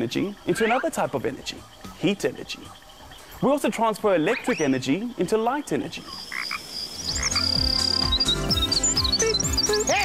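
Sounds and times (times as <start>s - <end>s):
chirping whistling animal calls: 0.4s - 2.0s, 4.1s - 4.8s, 6.0s - 10.0s.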